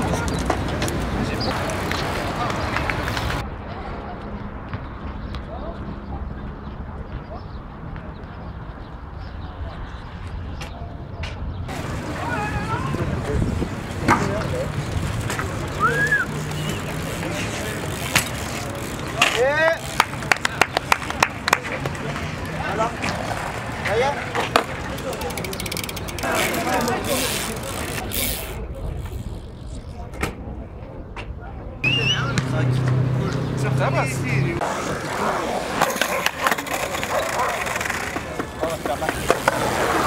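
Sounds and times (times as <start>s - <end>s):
distant voices: 0.0s - 40.0s
outdoor background noise: 0.0s - 40.0s.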